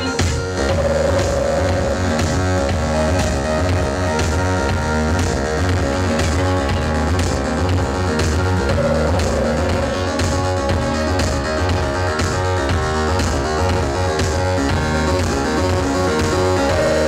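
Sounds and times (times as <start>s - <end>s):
electronic synthesizer music: 0.0s - 17.0s
pulsing low bass line: 0.0s - 17.0s.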